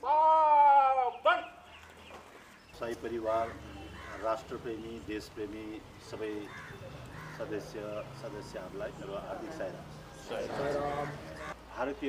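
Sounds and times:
man shouting drill command: 0.0s - 1.6s.

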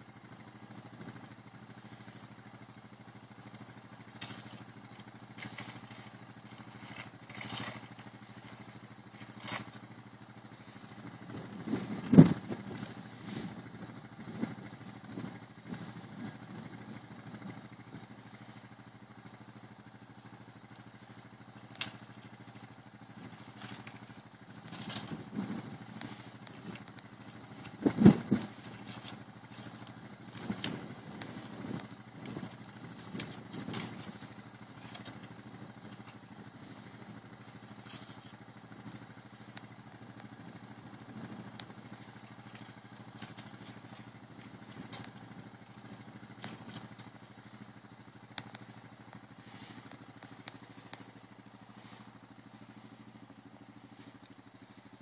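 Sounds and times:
low hum: 0.0s - 55.0s.

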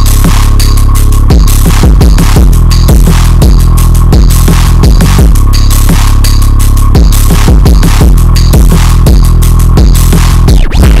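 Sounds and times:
loud electronic music: 0.0s - 11.0s.

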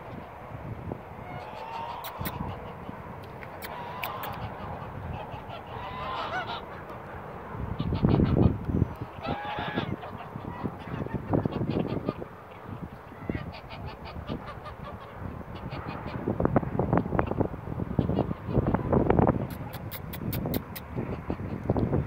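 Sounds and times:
geese honking: 1.2s - 16.3s.

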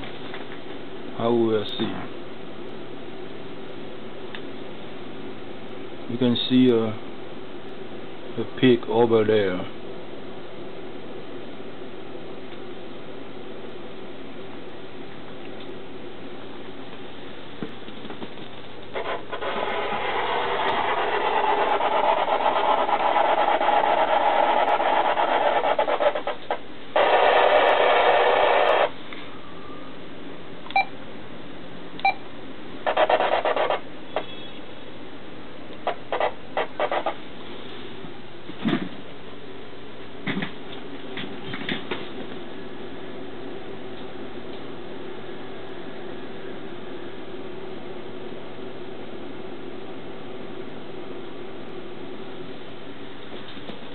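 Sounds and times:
low electrical hum: 0.0s - 53.9s
loud burst of static: 18.9s - 29.0s, 32.8s - 33.8s, 35.8s - 37.2s
radio static: 18.9s - 29.0s, 32.8s - 34.5s, 35.8s - 37.2s.

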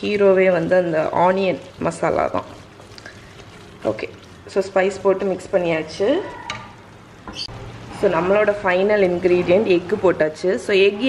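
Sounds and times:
wooden spoon stirring in a pan: 0.0s - 8.0s
soft sizzle of frying: 0.0s - 11.0s.

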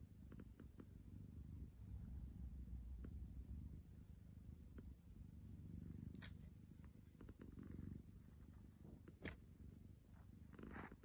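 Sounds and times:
cat purring: 0.0s - 11.0s.

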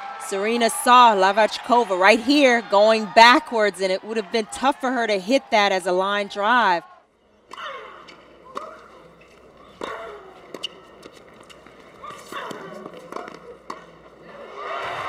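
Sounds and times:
murmur of spectators: 0.0s - 15.0s
tennis racket hitting ball: 7.5s - 14.1s.

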